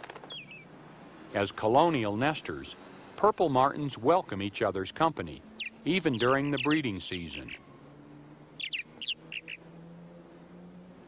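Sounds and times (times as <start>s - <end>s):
martins chirping: 0.2s - 0.8s, 1.4s - 7.9s, 8.5s - 9.7s.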